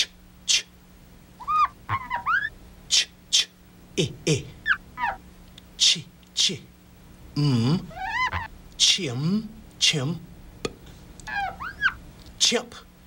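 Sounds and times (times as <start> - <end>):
man making hissing ch sounds: 0.0 - 0.8, 2.9 - 4.6
squeaky rising and falling chirps: 1.4 - 2.6, 4.6 - 5.2, 7.9 - 8.5, 11.2 - 12.0.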